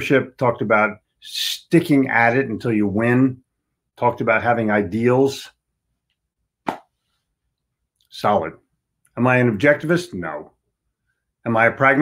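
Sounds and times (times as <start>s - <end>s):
mouth pop: 6.6s - 6.9s.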